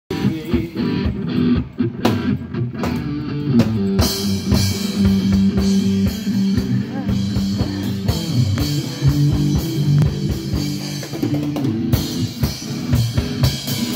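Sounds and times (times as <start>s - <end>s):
drum kit: 0.1s - 13.9s
electric guitar: 0.1s - 13.9s.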